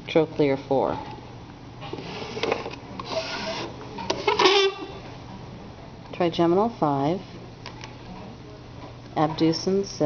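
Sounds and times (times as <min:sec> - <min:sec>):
plastic models rubbing and scraping: 0:02.0 - 0:03.7.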